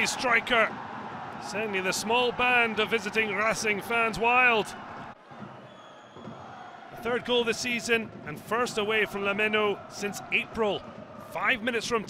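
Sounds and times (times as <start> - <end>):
faint stadium crowd noise: 0.0 - 12.0.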